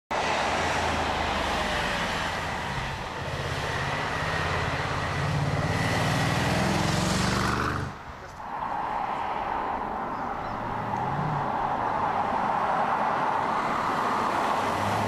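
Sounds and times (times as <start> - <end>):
road and tyre noise: 0.1 - 15.0.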